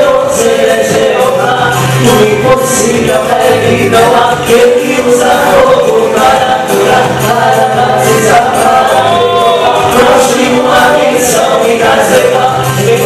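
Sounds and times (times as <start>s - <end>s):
instrumental accompaniment with bass: 0.0s - 13.0s
man and woman singing: 0.0s - 13.0s.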